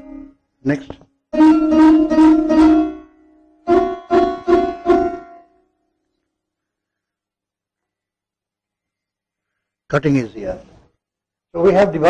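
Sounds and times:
sarod plucked notes: 0:00.0 - 0:03.1.

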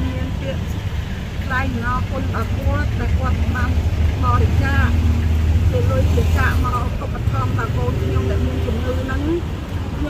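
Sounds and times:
woman talking: 0:00.0 - 0:00.7, 0:01.4 - 0:05.0, 0:05.7 - 0:10.0
vehicle engine idling: 0:00.0 - 0:10.0.

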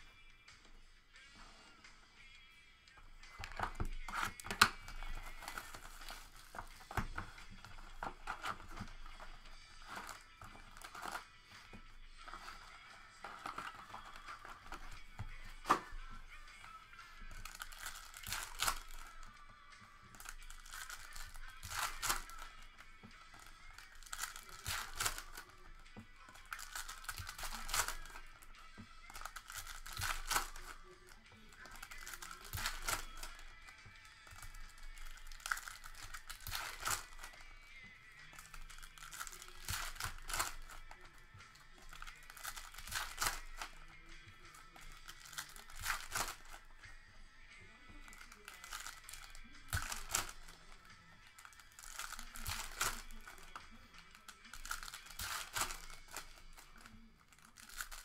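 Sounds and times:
background music: 0:00.0 - 0:58.0
foil wrappers crinkling and tearing: 0:03.3 - 0:37.5, 0:38.2 - 0:46.8, 0:47.9 - 0:58.0.

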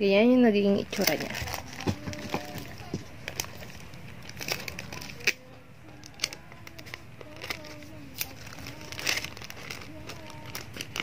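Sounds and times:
plastic wrapping crinkling: 0:00.6 - 0:11.0.

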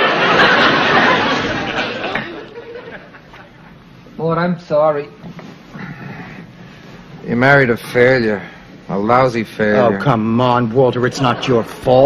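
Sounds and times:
audience laughing: 0:00.0 - 0:03.8, 0:11.0 - 0:12.0.

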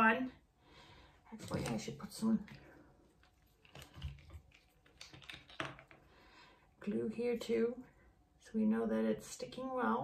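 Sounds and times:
hands handling plastic tube: 0:01.4 - 0:06.1.

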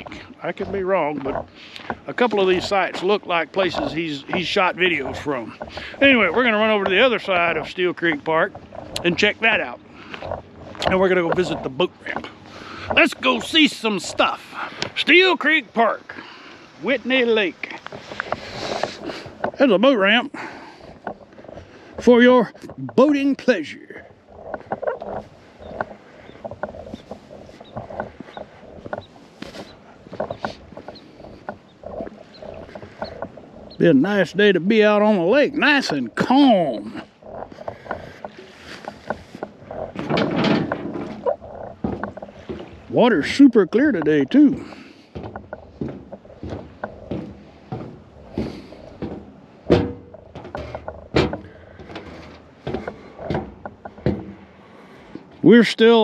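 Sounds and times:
footsteps crunching on gravelly sand: 0:00.0 - 0:40.1, 0:41.0 - 0:55.5.

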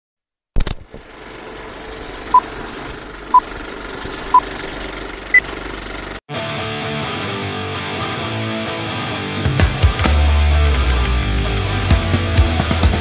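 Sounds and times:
film projector rattle and hum: 0:00.7 - 0:06.2.

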